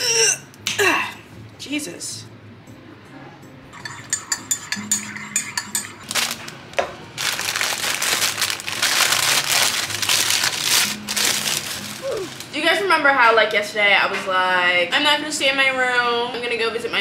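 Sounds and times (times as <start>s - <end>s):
paper wrapping crinkling: 6.1s - 6.6s, 7.2s - 12.6s.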